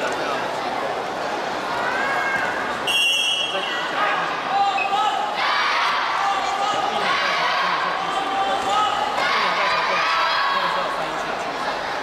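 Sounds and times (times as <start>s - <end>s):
referee's whistle blast: 2.8s - 3.8s
children shouting and cheering: 5.3s - 7.9s.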